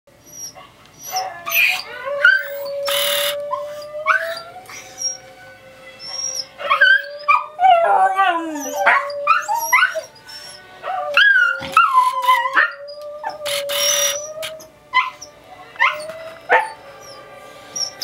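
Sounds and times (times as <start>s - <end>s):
dogs howling and yipping: 0.2s - 18.0s.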